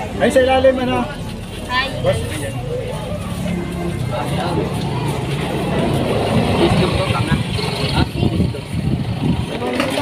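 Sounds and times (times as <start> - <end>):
people talking: 0.0 - 10.0
vehicle engine running: 0.9 - 10.0.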